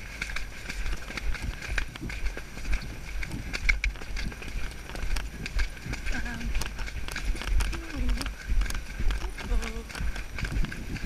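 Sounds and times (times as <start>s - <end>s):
hoofbeats on muddy track: 0.0s - 11.0s
wind on microphone: 0.0s - 11.0s.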